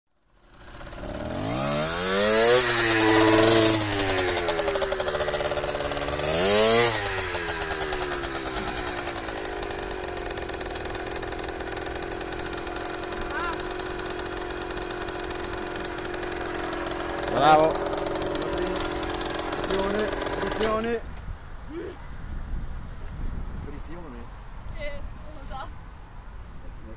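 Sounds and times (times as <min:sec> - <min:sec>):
motorcycle engine revving and idling: 0:00.1 - 0:21.0.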